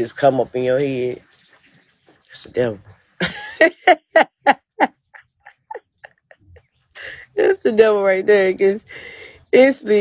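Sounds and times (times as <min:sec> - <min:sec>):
woman laughing: 0:03.2 - 0:07.6.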